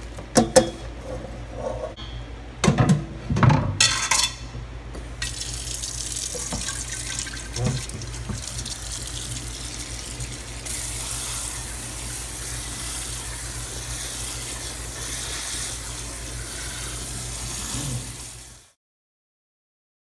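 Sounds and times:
tap water running into colander: 5.2s - 18.7s.

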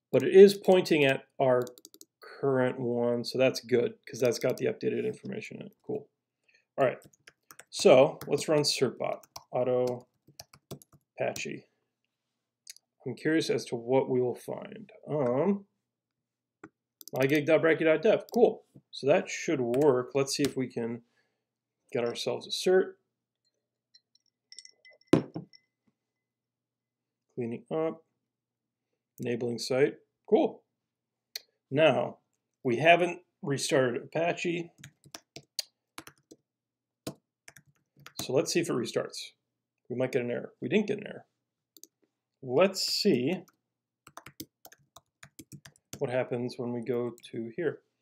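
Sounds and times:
typing on computer keyboard: 1.6s - 2.1s, 7.0s - 11.1s, 17.0s - 17.4s, 34.8s - 36.4s, 37.1s - 38.3s, 44.1s - 46.0s
glass clinking: 24.0s - 25.7s
glass knocking on hard surface: 24.6s - 25.6s.

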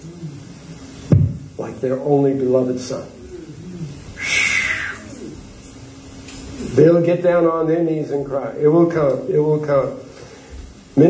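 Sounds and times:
person hissing air: 3.2s - 5.6s.

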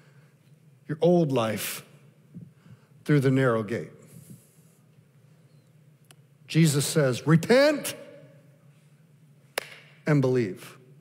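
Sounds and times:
echo of spoken word: 6.5s - 8.5s, 9.8s - 10.9s.

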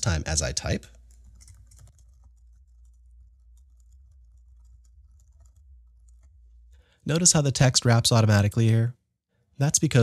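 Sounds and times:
keyboard typing: 0.6s - 6.8s.

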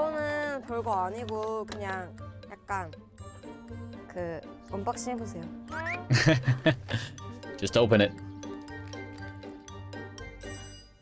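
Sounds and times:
women speaking: 0.0s - 3.0s, 4.0s - 6.1s.

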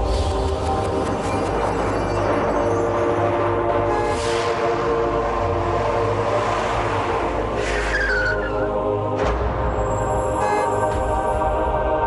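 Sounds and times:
intro music with low drone: 0.0s - 8.0s, 8.6s - 12.0s.

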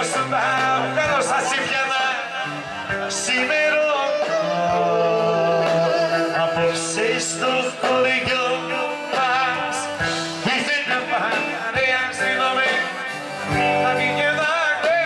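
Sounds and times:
instrumental accompaniment with beat: 0.0s - 15.0s
man singing into microphone: 0.0s - 15.0s.

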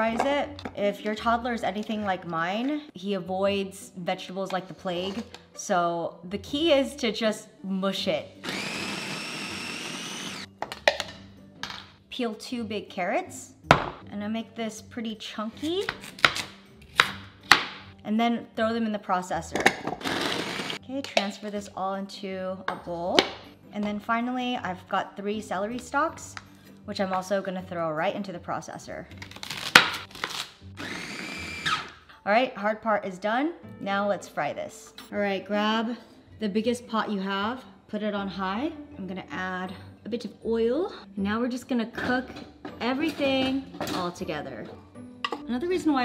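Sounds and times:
food processor motor running: 8.4s - 10.5s, 20.0s - 20.8s, 30.8s - 31.9s.

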